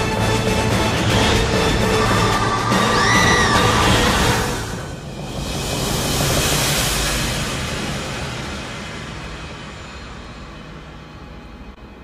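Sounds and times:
loud rushing swell: 0.9 - 10.4.

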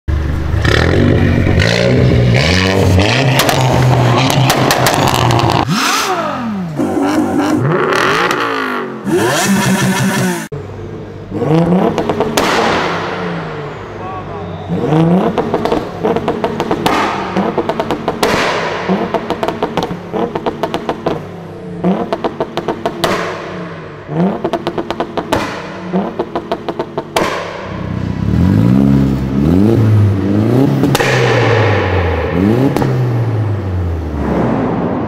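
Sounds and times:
car engine blipped: 0.1 - 35.0
car engine revving up and down: 0.1 - 35.0
exhaust pops and crackles: 3.3 - 5.7, 15.3 - 21.2, 24.4 - 27.8.

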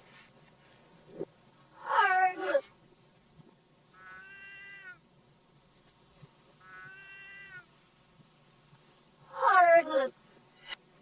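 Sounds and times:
cat meowing backwards: 4.0 - 5.0, 6.6 - 7.7.

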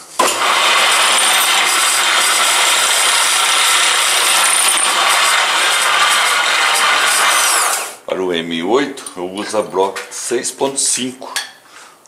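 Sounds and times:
drill press drilling metal: 0.1 - 8.0.

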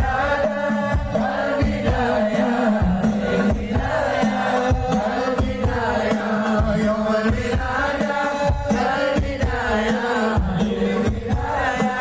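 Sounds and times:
frame drum beats: 0.0 - 12.0
massed voices chanting: 0.0 - 12.0.

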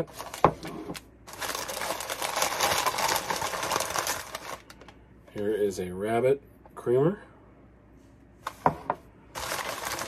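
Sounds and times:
newspaper crumpling and crinkling: 0.0 - 4.9, 9.4 - 10.0.

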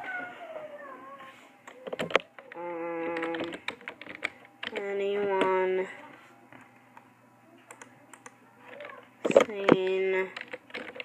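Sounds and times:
typing on a keyboard: 1.7 - 5.5, 7.7 - 11.0
person humming held notes: 2.5 - 3.6.

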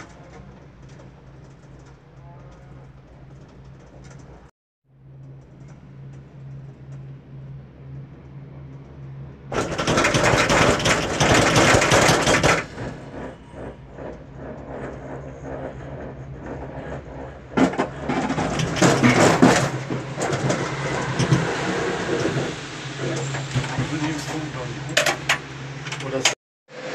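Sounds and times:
mechanical rattling and clatter: 0.0 - 26.4
gondola cabin hum: 0.0 - 26.9.

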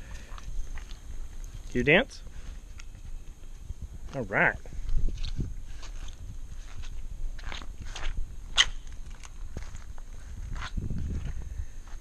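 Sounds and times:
flip-flop footsteps on grass: 0.0 - 12.0.

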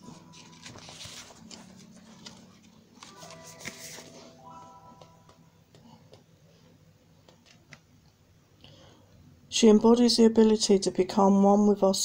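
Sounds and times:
faint background music: 0.0 - 8.6, 9.2 - 12.0.

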